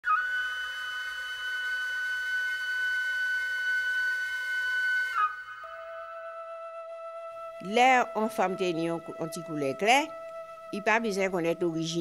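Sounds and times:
flute holding a high note: 0:00.0 - 0:12.0.

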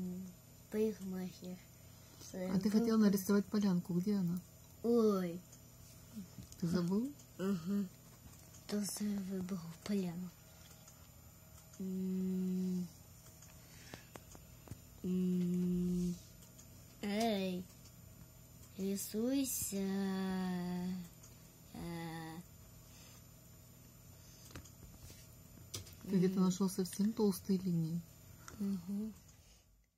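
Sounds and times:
person humming: 0:07.4 - 0:08.0, 0:11.8 - 0:12.9, 0:15.0 - 0:16.2, 0:28.5 - 0:29.2.

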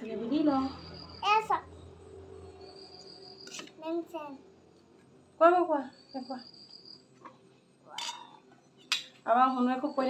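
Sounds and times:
cricket trilling: 0:00.0 - 0:10.0.

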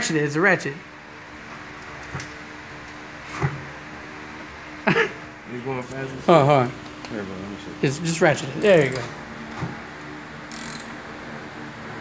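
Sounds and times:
socket ratchet clicking: 0:10.5 - 0:11.0.

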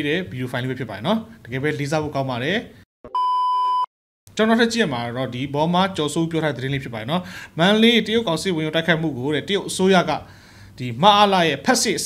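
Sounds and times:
man speaking: 0:00.0 - 0:02.7, 0:04.4 - 0:12.0
censor bleep: 0:03.1 - 0:03.9.

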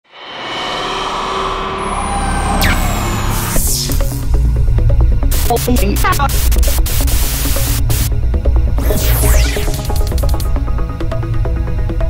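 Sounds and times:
falling high whistle: 0:01.7 - 0:04.0
electronic music with heavy bass: 0:02.0 - 0:11.8.

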